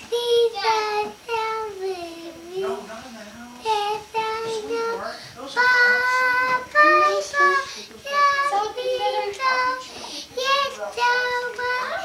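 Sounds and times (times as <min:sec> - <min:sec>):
girl singing unaccompanied: 0:00.0 - 0:02.9, 0:03.5 - 0:12.0.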